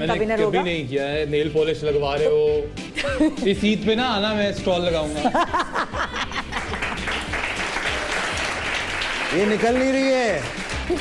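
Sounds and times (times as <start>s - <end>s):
applause: 6.4s - 11.0s.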